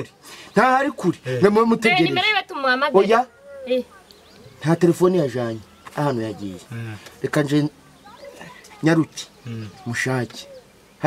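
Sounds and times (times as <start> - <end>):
man talking: 0.0 - 2.2, 4.6 - 7.8, 8.8 - 10.6.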